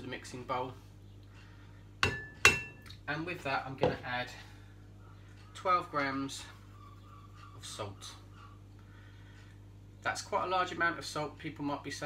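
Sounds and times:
utensil clinking on mixing bowl: 0:02.0 - 0:02.9.

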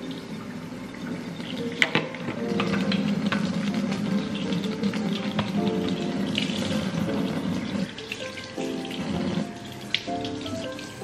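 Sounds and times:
faucet water splashing: 0:00.0 - 0:11.0
lo-fi background music: 0:00.0 - 0:11.0.

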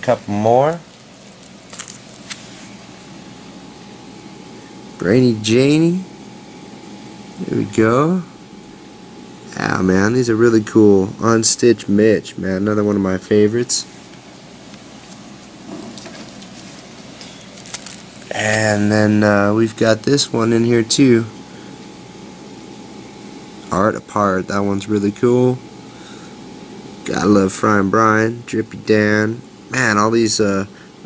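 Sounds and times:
room hum: 0:00.0 - 0:31.0
plastic wrapper crinkling: 0:00.8 - 0:02.6, 0:15.9 - 0:18.3.

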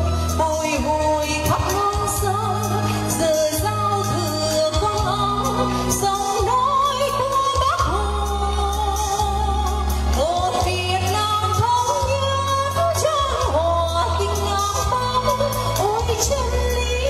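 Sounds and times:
amplified backing music: 0:00.0 - 0:17.0
woman singing with vibrato: 0:00.0 - 0:17.0.

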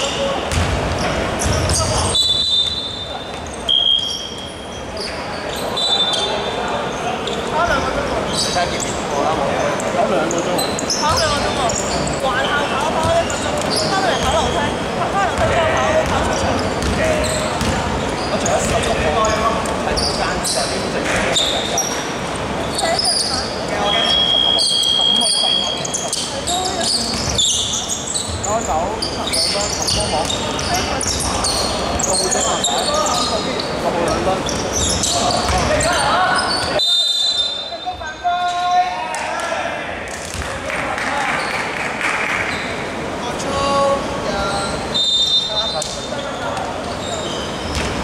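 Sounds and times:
sneaker squeaks: 0:00.0 - 0:38.8, 0:42.4 - 0:42.8, 0:44.5 - 0:48.0
basketball bouncing on hardwood: 0:00.5 - 0:01.9, 0:15.4 - 0:17.0, 0:17.6 - 0:17.8.

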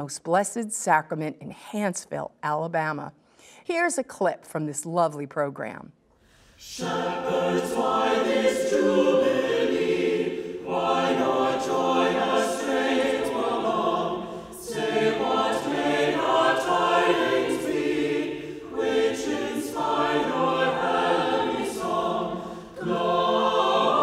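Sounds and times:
choir singing a hymn: 0:06.6 - 0:24.0.

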